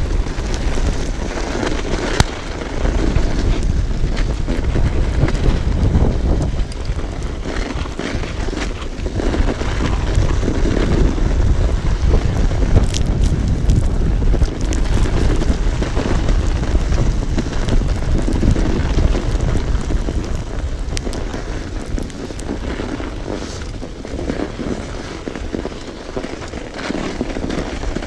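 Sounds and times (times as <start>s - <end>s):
bike clicking: 0.0s - 28.0s
wind buffeting microphone: 0.0s - 28.0s.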